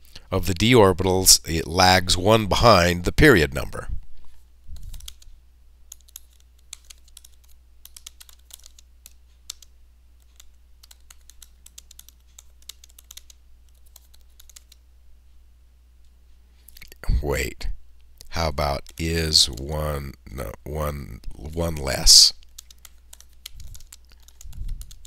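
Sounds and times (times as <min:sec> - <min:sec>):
faint low hum: 0:00.0 - 0:25.0
computer keyboard typing: 0:04.8 - 0:05.3, 0:05.9 - 0:14.8, 0:18.8 - 0:19.7, 0:21.3 - 0:25.0.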